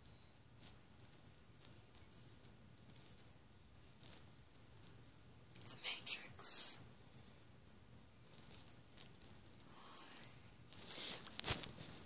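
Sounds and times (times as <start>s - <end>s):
person whispering: 5.6s - 6.9s, 9.6s - 10.4s.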